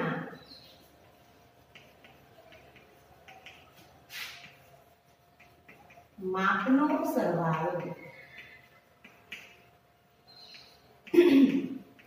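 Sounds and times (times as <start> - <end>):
chalk tapping and scratching: 0.4 - 12.0.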